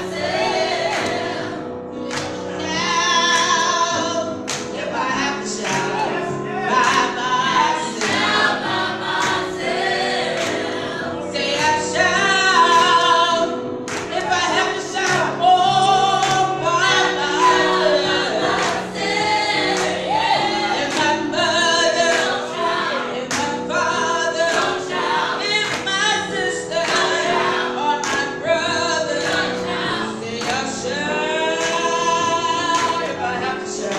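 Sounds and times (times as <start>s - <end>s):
group singing gospel song: 0.0s - 33.9s.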